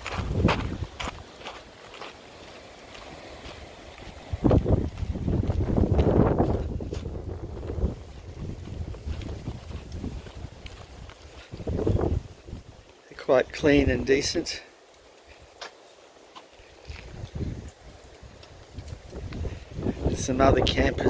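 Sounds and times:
wind buffeting microphone: 0.0 - 1.3, 2.9 - 12.8, 16.8 - 21.0
footsteps on dry ground: 0.0 - 21.0.

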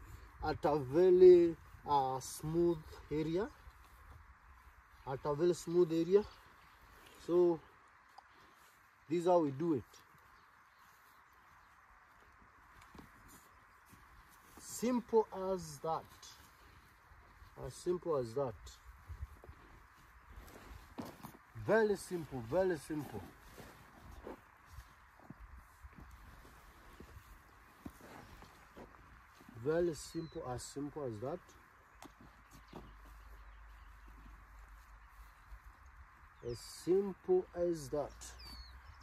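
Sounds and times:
background hiss: 0.0 - 39.0.

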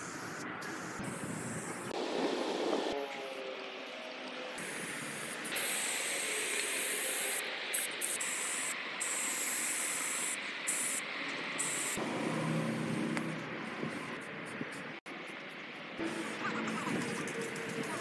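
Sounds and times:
spray-paint can hissing: 4.6 - 12.0.

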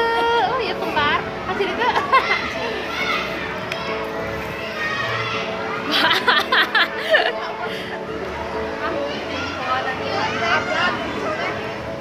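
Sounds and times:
background music: 0.0 - 12.0
children chattering at play: 0.0 - 12.0.

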